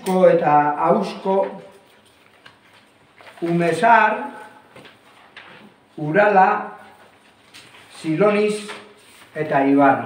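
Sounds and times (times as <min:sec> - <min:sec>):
man speaking: 0:00.0 - 0:01.8, 0:03.4 - 0:04.6, 0:06.0 - 0:07.0, 0:07.9 - 0:10.0.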